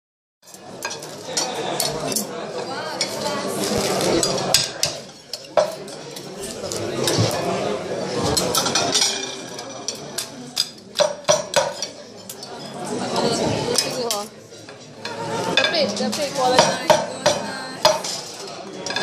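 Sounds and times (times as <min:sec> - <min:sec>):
serving spoon and plates clinking: 0:00.4 - 0:02.3, 0:04.0 - 0:07.5, 0:08.3 - 0:12.8, 0:13.7 - 0:19.0
china plate knocking on dish: 0:16.5 - 0:18.2.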